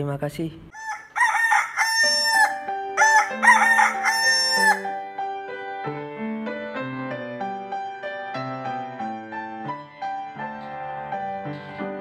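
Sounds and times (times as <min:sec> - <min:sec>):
rooster crowing: 0:00.8 - 0:05.0
soft keyboard music: 0:01.2 - 0:12.0.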